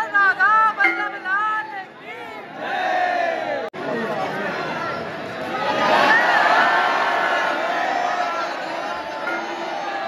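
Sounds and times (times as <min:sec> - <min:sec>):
crowd calling out together: 0:01.6 - 0:03.7, 0:05.5 - 0:10.0.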